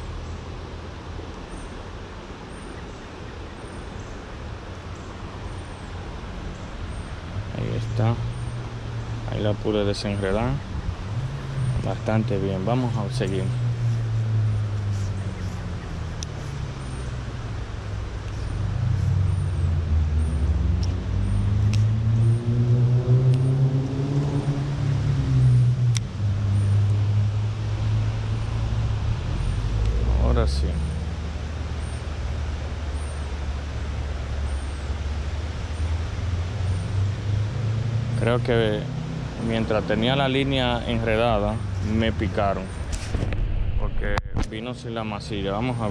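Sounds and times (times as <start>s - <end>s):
road traffic rumble: 0.0s - 45.9s
vehicle engine passing: 5.5s - 45.9s.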